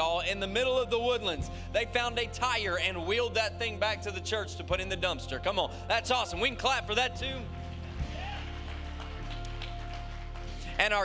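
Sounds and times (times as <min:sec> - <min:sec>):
audience clapping and cheering: 0:07.3 - 0:11.0.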